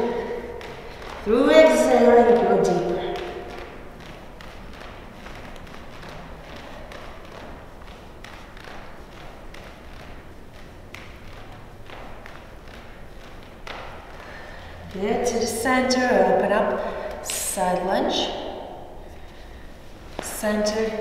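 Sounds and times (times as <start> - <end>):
room noise: 0.0 - 21.0
barefoot taps on yoga mat: 0.1 - 15.4, 16.2 - 21.0.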